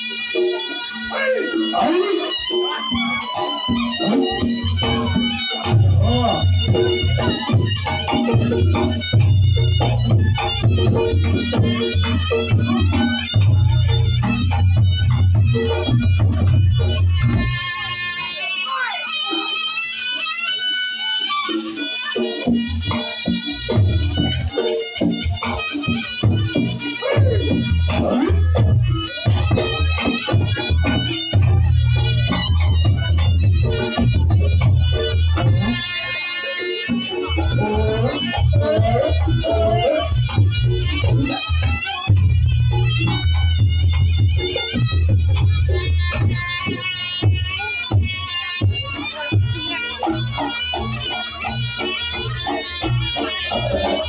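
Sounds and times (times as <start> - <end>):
shawm melody: 0.0 - 54.0.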